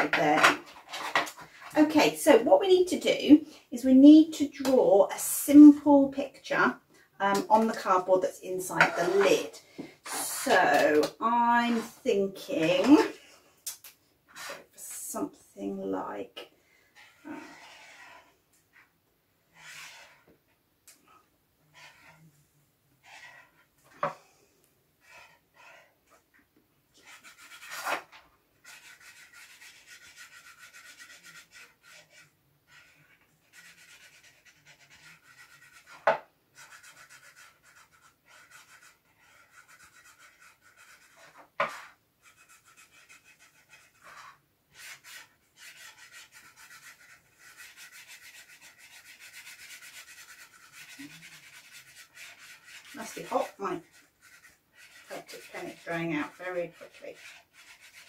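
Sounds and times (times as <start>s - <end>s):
pen scratching on cardboard: 8.8s - 12.0s, 17.0s - 18.9s, 19.6s - 20.3s, 21.7s - 22.3s, 23.0s - 24.1s, 27.0s - 58.0s.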